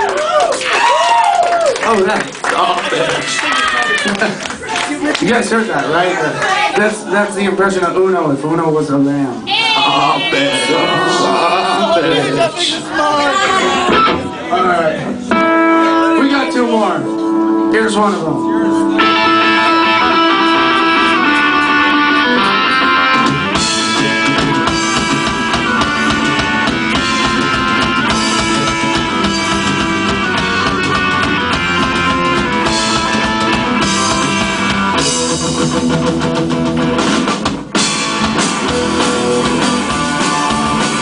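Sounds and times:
electric guitars: 15.0 - 41.0
drum kit with cymbals: 23.2 - 41.0.

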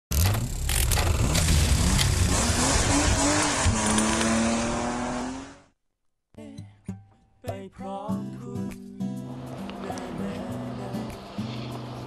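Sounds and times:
racing engine revving: 0.5 - 5.7.

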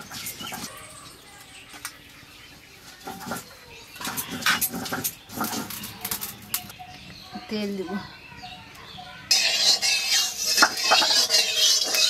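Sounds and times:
spatula scraping a pan: 2.9 - 6.4, 9.3 - 12.0.

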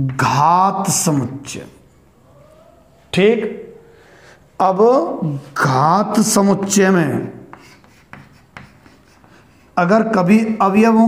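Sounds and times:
chalk scratching on chalkboard: 6.3 - 9.8
chalk tapping on chalkboard: 6.4 - 9.8.

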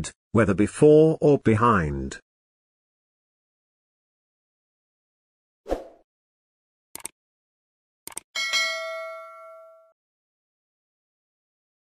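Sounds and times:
notification bell ding: 8.4 - 10.0.

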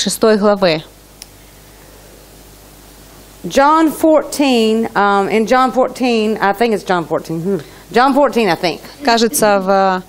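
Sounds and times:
background hiss: 0.6 - 10.0
faint click: 1.2 - 1.4.

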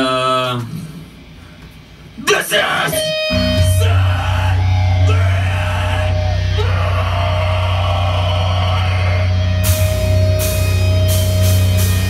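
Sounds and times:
distorted guitar and bass drone: 2.2 - 12.0
person yelling: 2.3 - 9.6
drums and cymbals crashing: 9.2 - 12.0.

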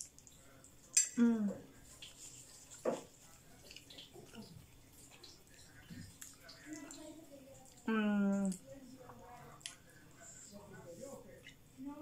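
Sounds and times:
wet chewing and lip-smacking: 1.8 - 9.8.

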